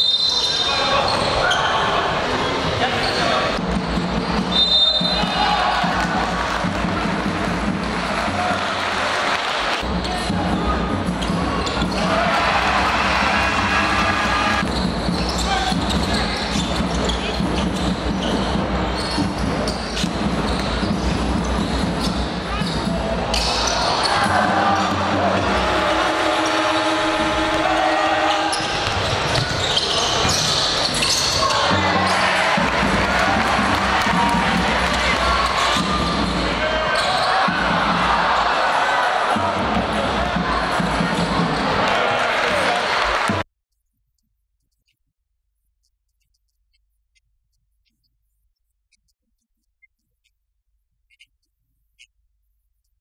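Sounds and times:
voices in hall: 0.0s - 19.9s, 20.6s - 43.4s.

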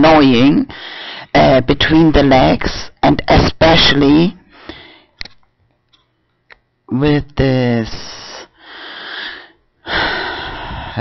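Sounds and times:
person speaking: 0.0s - 4.5s, 6.9s - 8.6s
person breathing: 0.7s - 1.3s, 4.5s - 5.2s, 8.5s - 11.0s.

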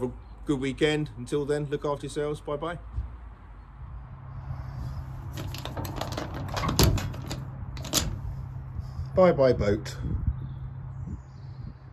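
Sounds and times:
padlock and hasp clinking: 5.2s - 8.4s
lock clicking shut: 5.4s - 8.3s.

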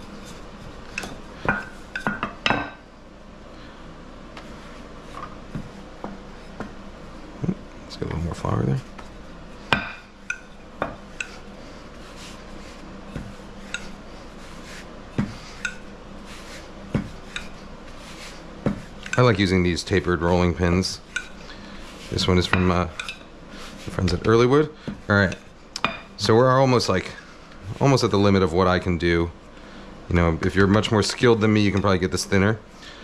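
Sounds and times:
rolling pin rolling over dough: 8.0s - 28.9s.

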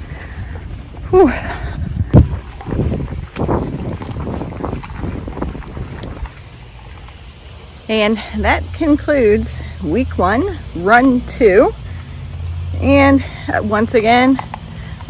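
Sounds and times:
wind buffeting microphone: 0.0s - 7.5s.

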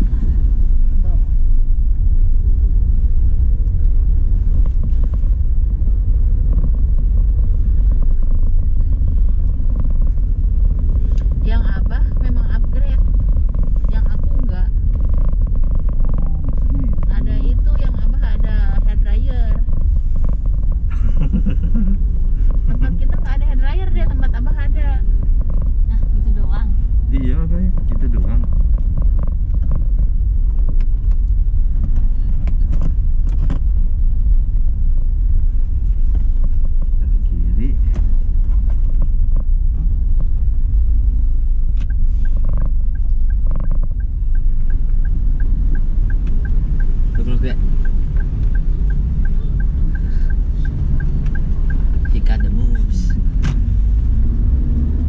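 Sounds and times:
car interior rumble: 0.0s - 55.0s.

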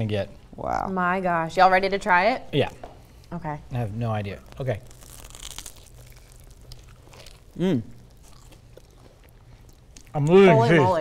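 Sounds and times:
crunch of biting toasted bread: 4.6s - 10.2s.

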